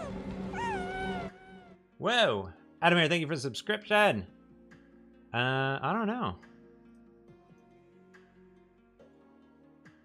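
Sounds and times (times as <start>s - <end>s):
squeaky creature coo: 0.0s - 1.8s.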